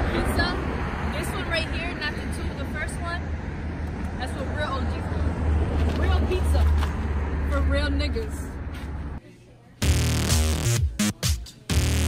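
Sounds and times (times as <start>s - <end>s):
voices: 0.0s - 3.3s, 4.1s - 9.8s.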